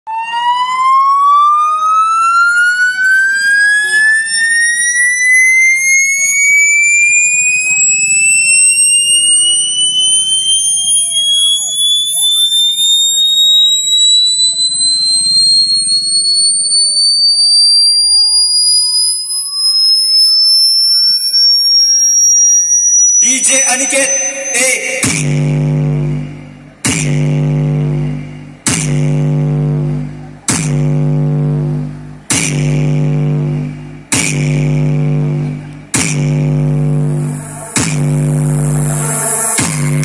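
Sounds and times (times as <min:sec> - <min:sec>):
rising electronic test tone: 0:00.1 - 0:35.4, 0:36.0 - 0:40.0.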